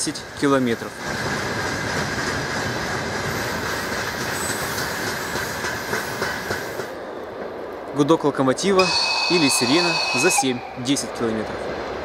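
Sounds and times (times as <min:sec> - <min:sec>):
train wheels rumbling and clattering: 0:00.0 - 0:12.0
high wheel squeal: 0:08.8 - 0:10.9.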